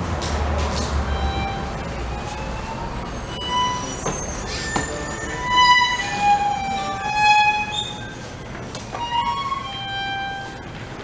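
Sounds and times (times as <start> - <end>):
solo violin sustained notes: 1.1 - 4.1, 4.8 - 8.3, 8.9 - 10.7.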